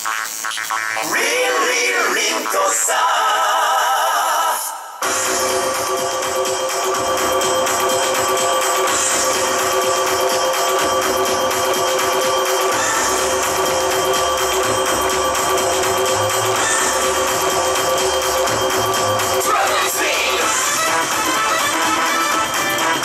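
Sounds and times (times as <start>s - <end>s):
dance music over sound system: 0.0s - 23.0s.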